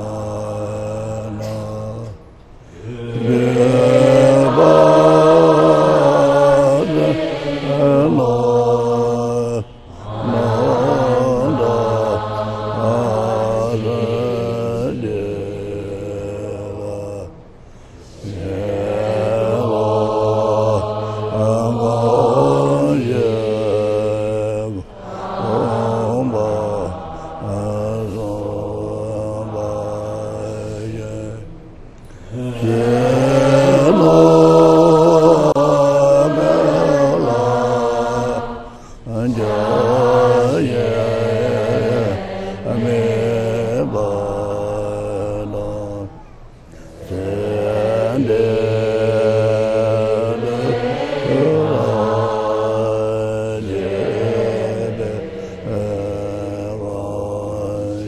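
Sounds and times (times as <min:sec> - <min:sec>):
congregation chanting in unison: 0:00.0 - 0:58.0.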